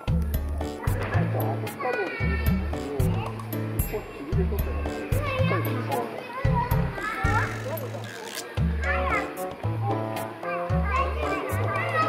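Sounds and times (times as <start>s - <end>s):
children chattering: 0.0s - 12.0s
light-hearted background music: 0.0s - 12.0s.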